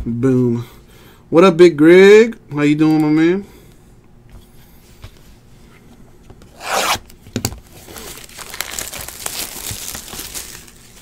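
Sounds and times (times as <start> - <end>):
plastic wrap ripping: 6.6 - 11.0
plastic and cardboard crinkling: 7.4 - 11.0.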